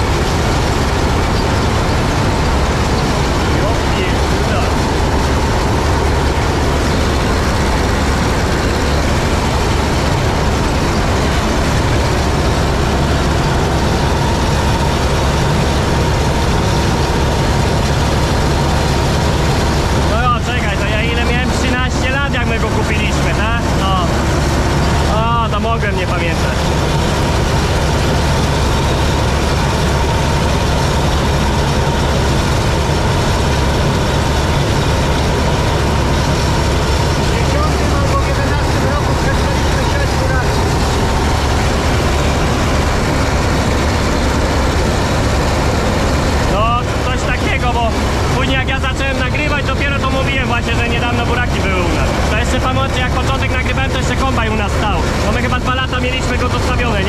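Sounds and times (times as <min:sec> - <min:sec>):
combine harvester running: 0:00.0 - 0:57.0.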